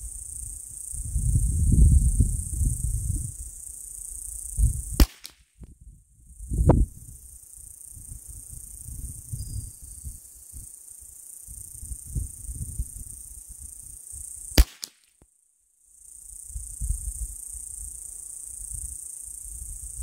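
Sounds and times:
rifle shots: 5.0s - 5.4s, 14.6s - 15.0s
high insect buzz: 6.3s - 15.0s, 15.9s - 20.0s.

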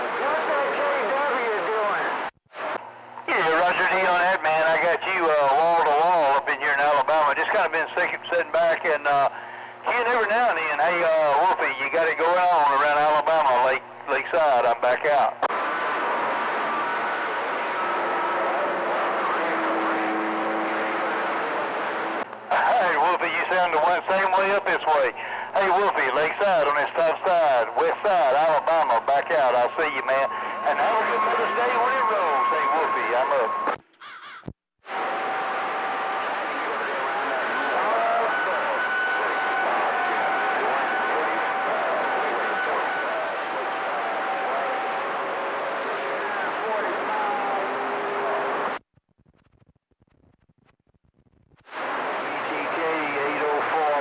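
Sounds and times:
radio static hiss: 0.0s - 33.8s, 34.9s - 54.0s
voice over radio: 3.3s - 15.5s, 22.5s - 33.8s, 52.2s - 54.0s
steady whistle tone: 30.3s - 33.8s, 37.5s - 43.1s.

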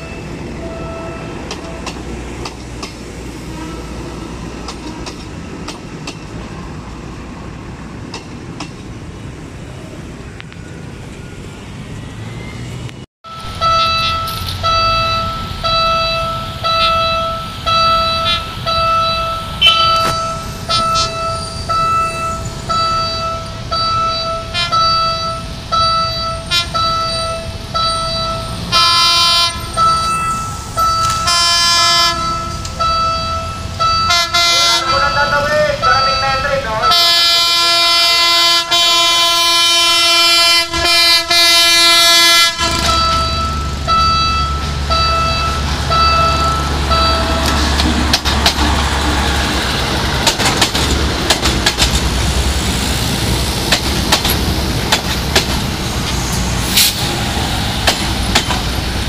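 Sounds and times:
train horn blasts: 3.4s - 5.1s, 13.3s - 30.2s, 30.8s - 47.6s
level crossing warning chimes: 13.3s - 28.7s, 29.5s - 37.0s, 42.8s - 47.7s.

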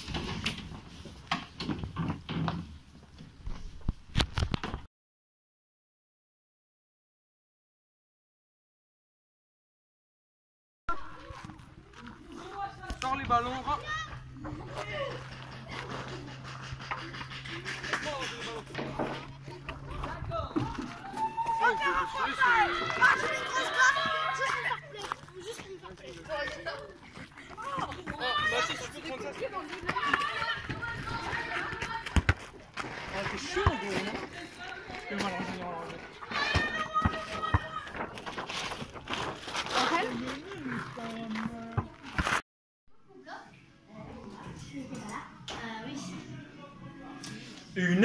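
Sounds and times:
children shouting: 13.7s - 17.9s, 19.1s - 25.7s, 26.4s - 32.3s, 36.2s - 38.2s.

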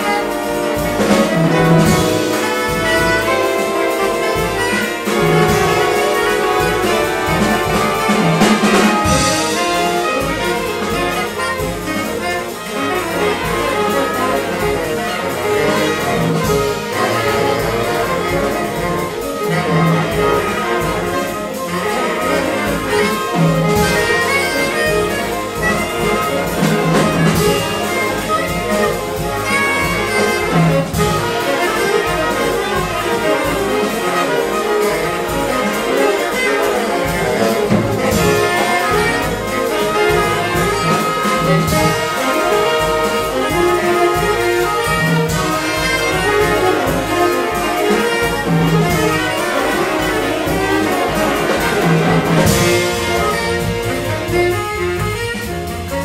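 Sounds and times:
big band jazz: 0.0s - 56.0s
featured saxophone: 0.0s - 56.0s.

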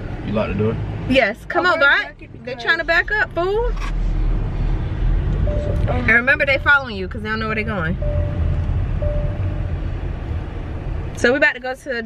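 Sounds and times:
car engine and road rumble: 0.0s - 12.0s
faint held tone: 8.0s - 9.7s.

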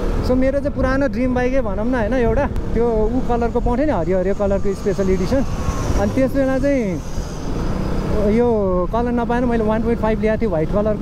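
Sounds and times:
man talking: 0.3s - 7.1s, 8.1s - 11.0s
wind rushing: 0.8s - 9.1s.

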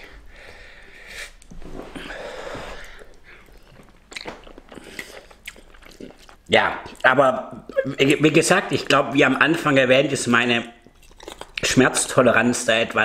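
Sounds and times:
person chewing noodles: 2.7s - 7.8s, 10.8s - 11.6s.

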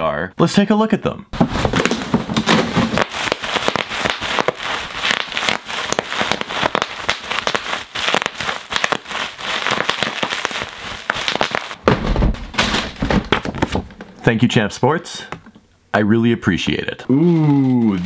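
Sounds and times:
bubble wrap crackling: 1.4s - 13.9s, 17.1s - 18.0s.

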